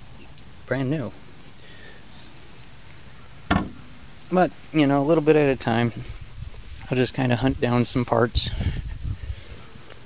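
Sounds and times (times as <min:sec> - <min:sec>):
faint steady background noise: 0:00.0 - 0:10.0
sharp knock with brief ring: 0:03.5 - 0:03.9.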